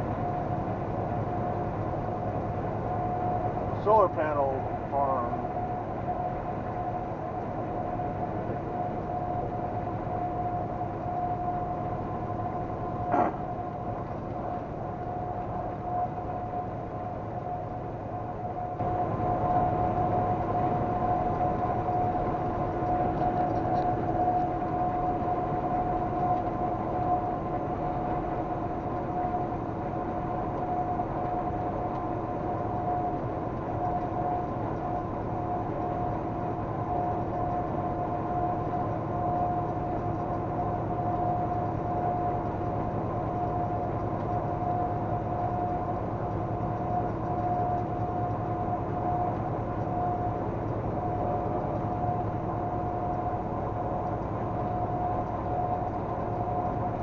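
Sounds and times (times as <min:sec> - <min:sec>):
high steady whine: 0:00.0 - 0:57.0.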